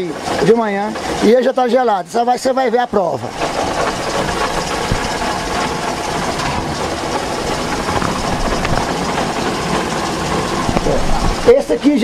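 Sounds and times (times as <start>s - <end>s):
motor running steadily: 0.0s - 12.0s.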